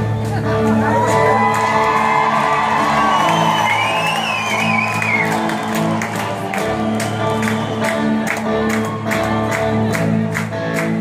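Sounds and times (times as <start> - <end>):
live rock band playing: 0.0 - 11.0
crowd cheering and whooping: 0.4 - 10.1.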